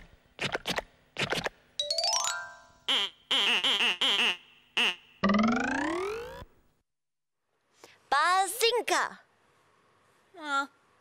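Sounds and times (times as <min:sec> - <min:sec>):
bouncy wobbling boings: 0:05.2 - 0:06.5.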